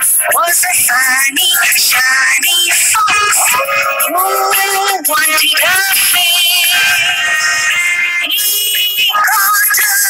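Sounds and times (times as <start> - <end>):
person singing children's song: 0.0 - 8.3
backing music: 2.7 - 7.7.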